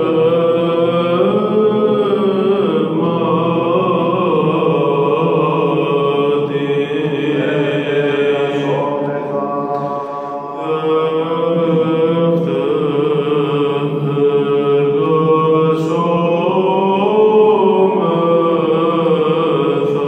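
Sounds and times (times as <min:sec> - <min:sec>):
man chanting solo: 0:06.8 - 0:13.9.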